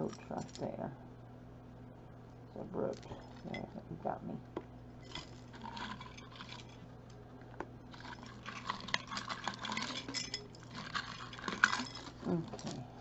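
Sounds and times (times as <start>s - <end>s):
jewelry clinking in glass jar: 2.9s - 3.8s, 5.0s - 6.8s, 7.8s - 12.8s.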